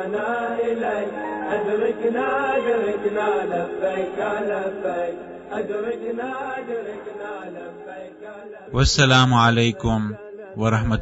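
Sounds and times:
person chanting melodically: 0:08.7 - 0:11.0.

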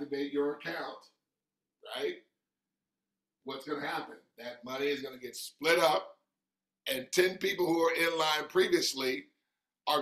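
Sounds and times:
man speaking: 0:00.0 - 0:01.2, 0:01.8 - 0:02.4, 0:03.4 - 0:10.0.

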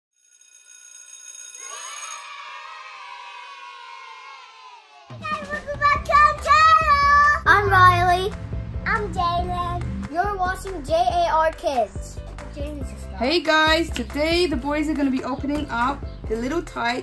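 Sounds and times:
high twinkle: 0:00.2 - 0:02.5
children chanting: 0:01.6 - 0:08.1
music with bass beat: 0:05.3 - 0:14.8.

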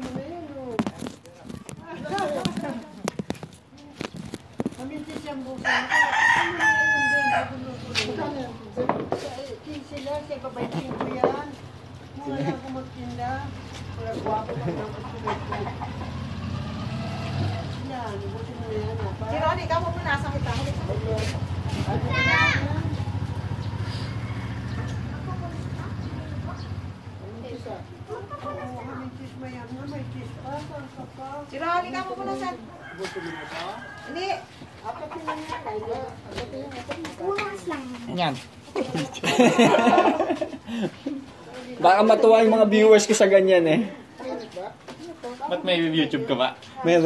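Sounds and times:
rooster crowing: 0:05.6 - 0:07.8, 0:23.2 - 0:25.7, 0:32.4 - 0:35.8
low engine hum: 0:10.2 - 0:31.4
child shouting: 0:21.9 - 0:22.9.

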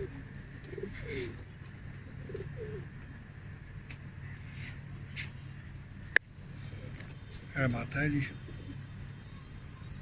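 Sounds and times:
pigeons cooing: 0:00.0 - 0:03.0, 0:06.0 - 0:10.0
steady low hum: 0:00.0 - 0:10.0.

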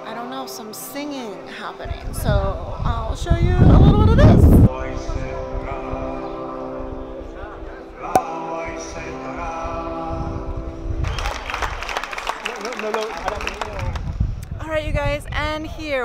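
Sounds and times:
group of people singing: 0:00.0 - 0:11.1
crowd hubbub: 0:00.0 - 0:13.4.

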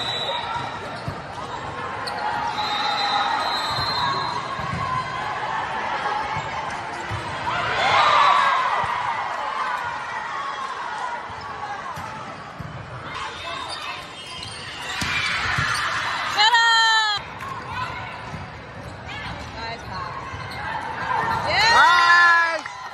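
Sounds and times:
crowd and player voices: 0:00.0 - 0:22.9.

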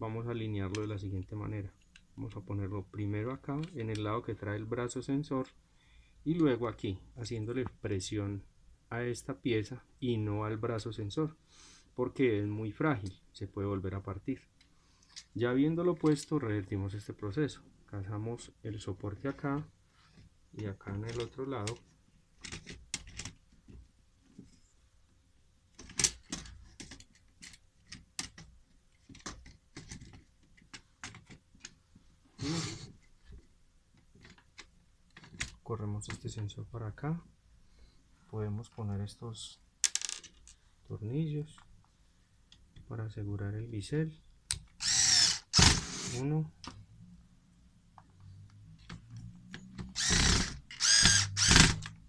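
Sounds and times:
plastic parts clicking: 0:21.0 - 0:23.5, 0:25.7 - 0:31.8
electric screwdriver motor: 0:44.8 - 0:46.2, 0:49.9 - 0:51.9.

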